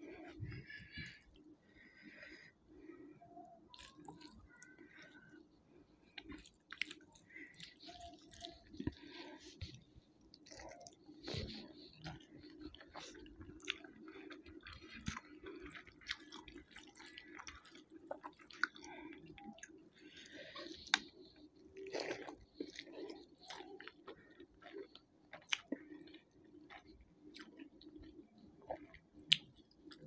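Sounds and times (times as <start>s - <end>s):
person chewing food: 0.0s - 30.0s.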